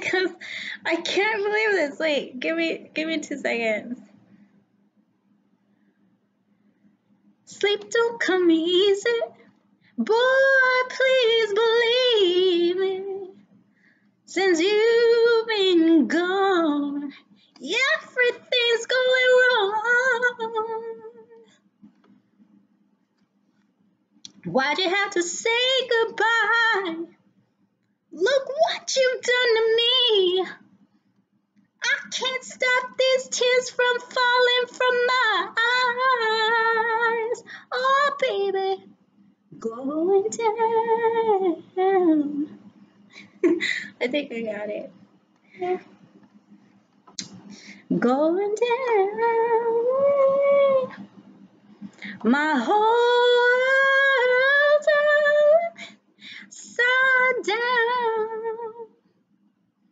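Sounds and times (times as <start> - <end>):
woman singing unaccompanied: 0.0 - 4.0, 7.5 - 9.4, 10.0 - 13.4, 14.3 - 21.5, 24.3 - 27.2, 28.2 - 30.6, 31.8 - 39.0, 39.6 - 42.6, 43.5 - 44.9, 45.6 - 45.9, 47.2 - 51.1, 52.0 - 59.0
singer taking a breath: 47.4 - 47.9.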